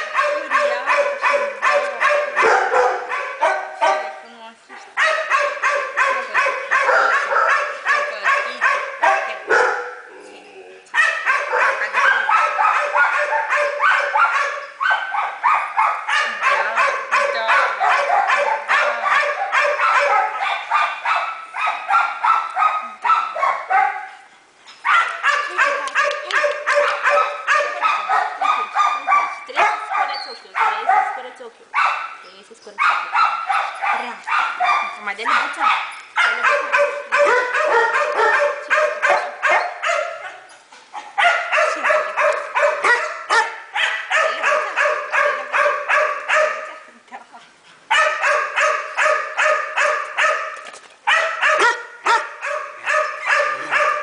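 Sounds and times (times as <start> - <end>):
dogs barking rapidly: 0.0 - 10.1, 10.9 - 46.9, 47.5 - 54.0.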